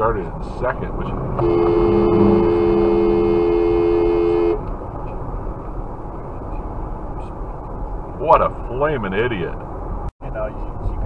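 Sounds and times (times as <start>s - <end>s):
road noise inside moving car: 0.0s - 11.0s
car horn two-note blast: 1.4s - 4.6s.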